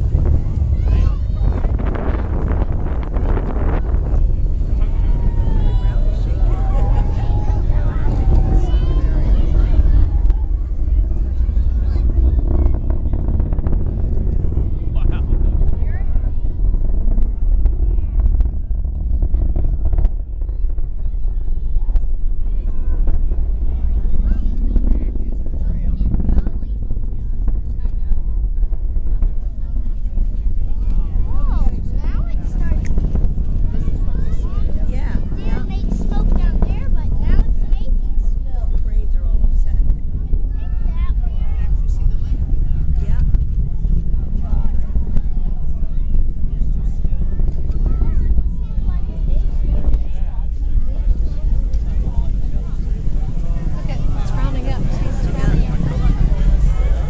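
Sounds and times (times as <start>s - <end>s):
crowd voices: 0.0s - 57.0s
distant rocket rumble: 0.0s - 57.0s.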